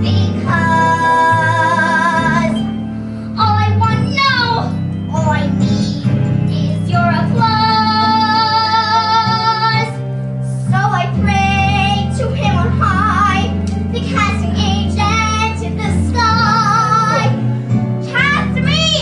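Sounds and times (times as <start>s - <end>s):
instrumental accompaniment: 0.0s - 19.0s.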